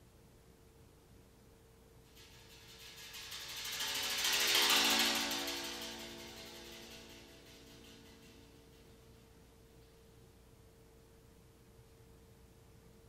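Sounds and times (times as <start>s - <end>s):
steel pan mallet roll: 2.1s - 9.6s.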